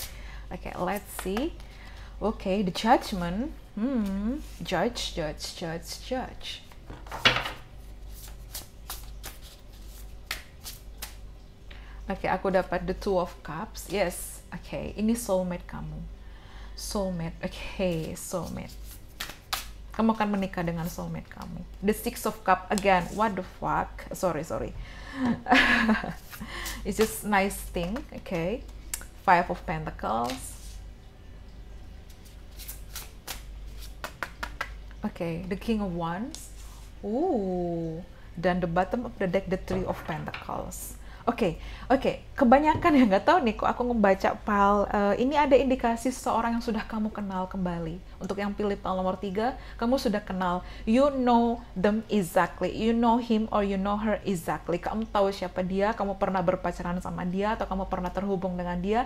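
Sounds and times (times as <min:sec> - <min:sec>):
cards being shuffled: 0:08.0 - 0:11.2, 0:18.0 - 0:20.4, 0:32.1 - 0:34.8.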